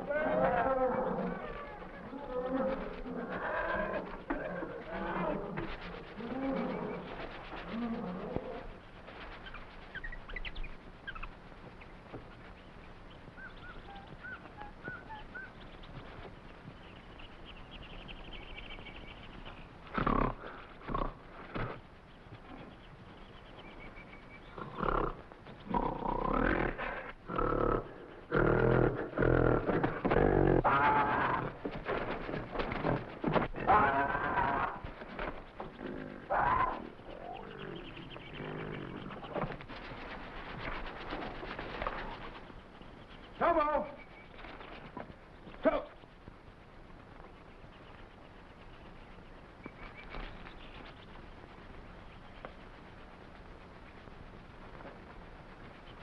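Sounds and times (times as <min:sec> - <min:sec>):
faint bird chirps: 0:00.0 - 0:56.0
gorilla roaring and growling: 0:24.6 - 0:31.6, 0:33.6 - 0:34.8, 0:35.6 - 0:37.8.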